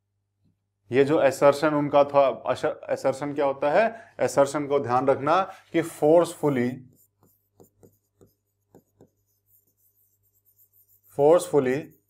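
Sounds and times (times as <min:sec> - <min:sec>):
pen scratching on board: 0:06.3 - 0:12.0.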